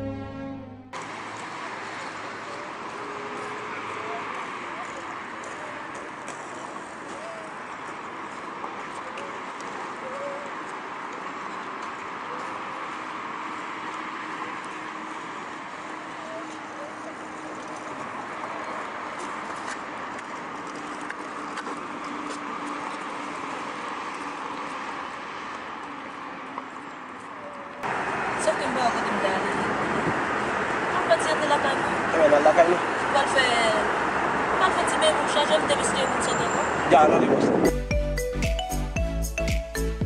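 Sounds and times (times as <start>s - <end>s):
car engine humming: 0.0s - 38.9s
city street traffic: 0.0s - 40.0s.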